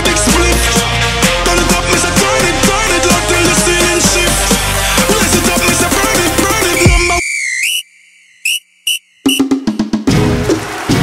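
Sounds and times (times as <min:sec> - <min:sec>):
music: 0:00.0 - 0:07.2, 0:09.2 - 0:11.0
high rising whistle: 0:06.7 - 0:09.5.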